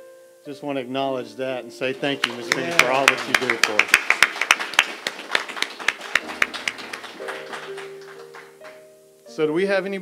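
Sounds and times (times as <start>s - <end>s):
crowd applauding: 2.0s - 8.8s.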